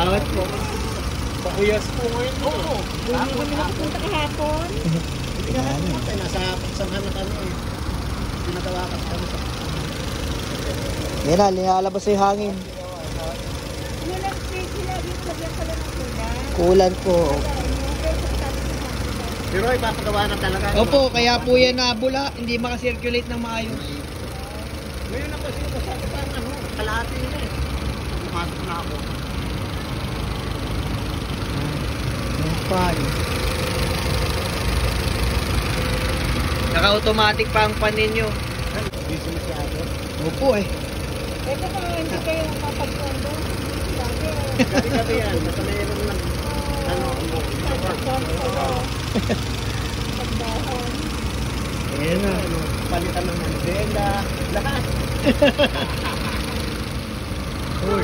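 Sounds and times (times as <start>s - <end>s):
car engine idling: 0.0s - 58.0s.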